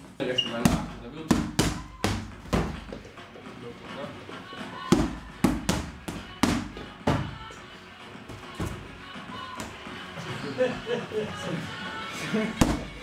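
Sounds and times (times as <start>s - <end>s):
boxing gloves hitting focus mitts: 0.6s - 3.0s, 4.9s - 7.5s, 12.6s - 13.0s.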